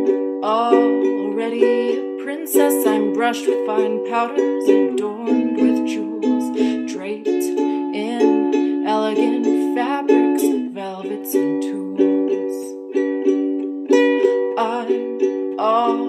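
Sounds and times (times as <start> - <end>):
woman singing folk song: 0.0 - 12.8, 14.5 - 16.0
ukulele plucked chords: 0.0 - 16.0.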